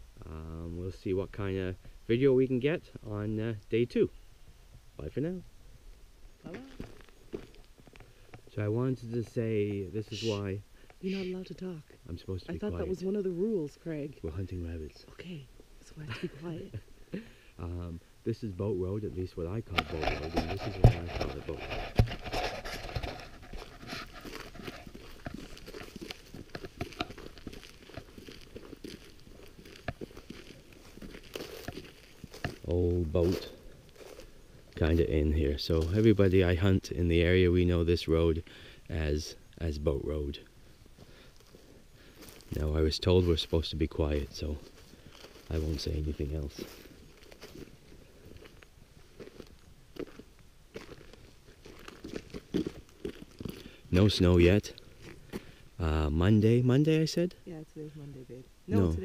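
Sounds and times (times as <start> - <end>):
footsteps crunching on snow: 6.5 - 10.5, 19.7 - 36.7, 40.9 - 55.6.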